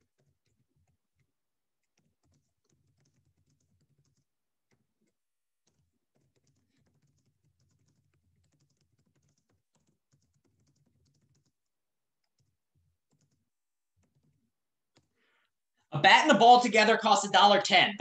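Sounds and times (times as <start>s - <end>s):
typing on keyboard: 0.0s - 15.1s.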